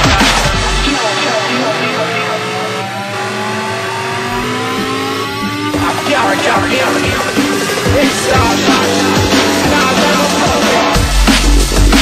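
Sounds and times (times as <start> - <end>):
sampled voice: 0.0 - 11.1
held synth tones: 0.8 - 11.0
rising synth pitch sweeps: 0.8 - 11.1.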